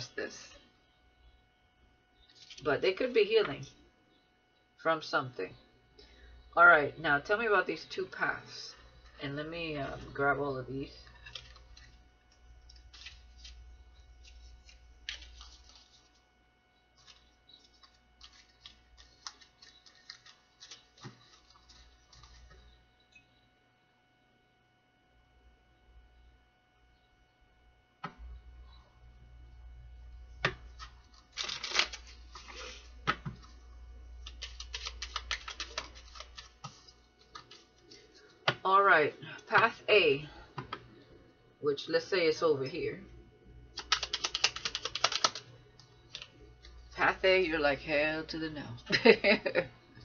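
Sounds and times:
cards being shuffled: 0:02.4 - 0:02.6, 0:11.2 - 0:16.2, 0:17.0 - 0:22.6, 0:30.4 - 0:33.6, 0:34.2 - 0:38.5, 0:43.8 - 0:45.5.

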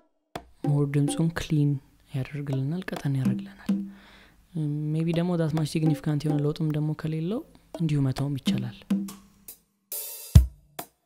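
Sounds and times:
drum tick: 0:02.5 - 0:04.0, 0:05.1 - 0:06.6.

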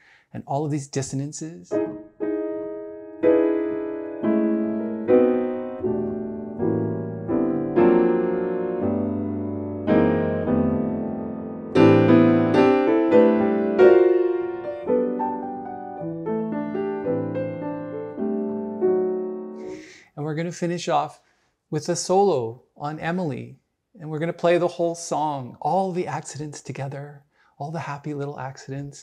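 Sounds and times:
jazz piano chords: 0:01.7 - 0:19.9.

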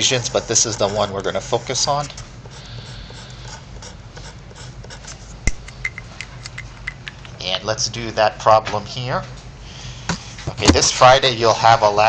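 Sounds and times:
marker squeaking on paper: 0:00.0 - 0:05.2.

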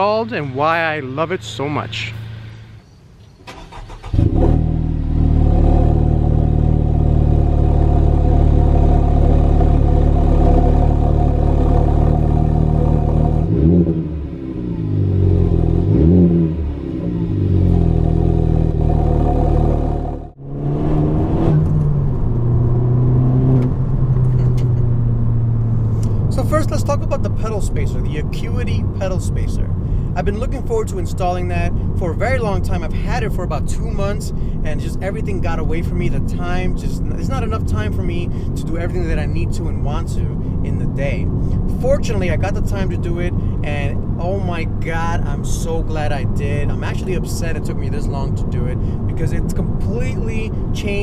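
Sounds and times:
car engine revving: 0:03.5 - 0:51.0.

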